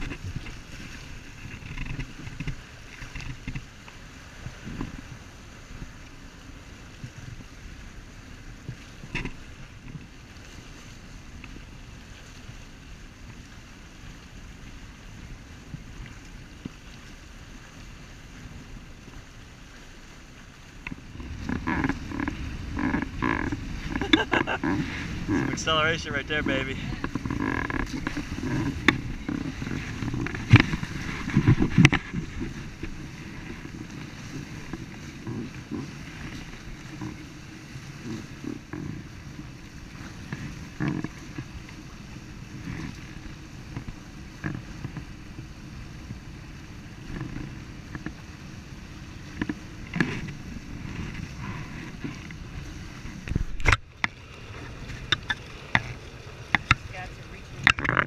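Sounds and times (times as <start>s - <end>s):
water rushing along hulls: 0.0s - 58.0s
wind buffeting microphone: 0.0s - 58.0s.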